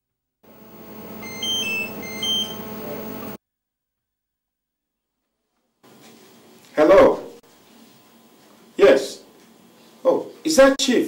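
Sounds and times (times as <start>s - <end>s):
steady hum: 0.4s - 3.4s
mobile phone ringtone beeps: 1.2s - 3.4s.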